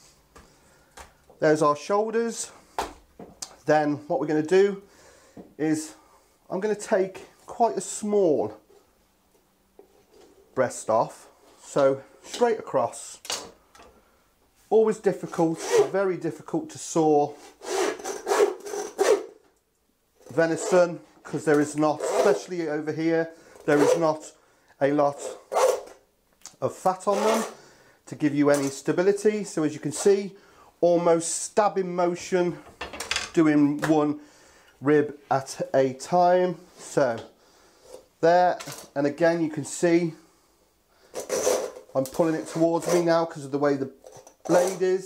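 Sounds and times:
hand saw rasping through bone: 0:17.5 - 0:19.3, 0:42.5 - 0:43.2.

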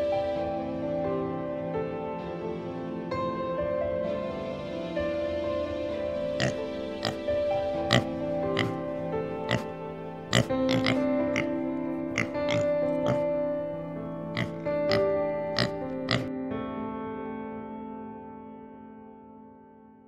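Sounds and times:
wild boar grunting: 0:06.4 - 0:07.2, 0:07.8 - 0:13.4, 0:14.3 - 0:16.3.

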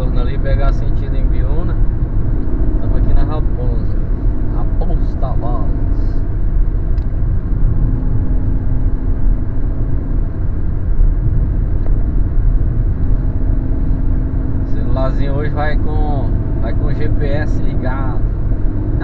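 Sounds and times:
car engine and tyre rumble: 0:00.0 - 0:19.0.

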